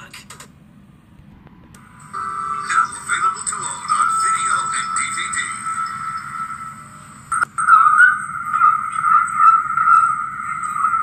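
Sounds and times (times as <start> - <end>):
tv audio through a speaker: 0.0 - 11.0.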